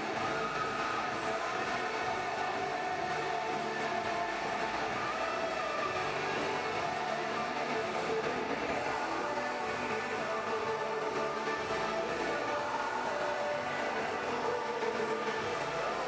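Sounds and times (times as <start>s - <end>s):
echoing arena ambience: 0.0s - 16.0s
music over public address: 0.0s - 16.0s.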